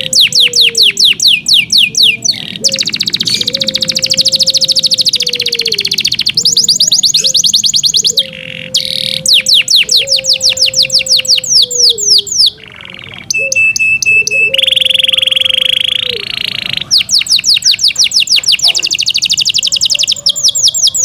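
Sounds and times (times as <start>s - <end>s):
canary singing: 0.0s - 21.0s.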